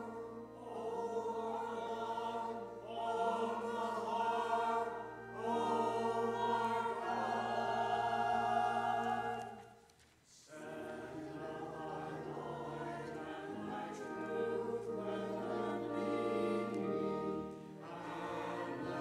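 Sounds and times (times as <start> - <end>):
mixed choir singing in parts: 0.0 - 9.8, 10.4 - 19.0.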